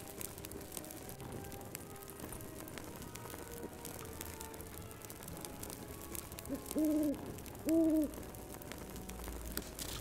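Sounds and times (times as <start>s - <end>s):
owl hooting: 6.5s - 8.2s.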